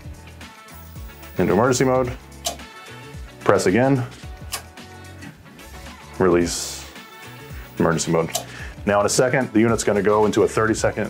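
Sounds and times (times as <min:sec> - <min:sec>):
soft background music: 0:00.0 - 0:11.0
relay click: 0:02.4 - 0:02.7, 0:08.3 - 0:08.5.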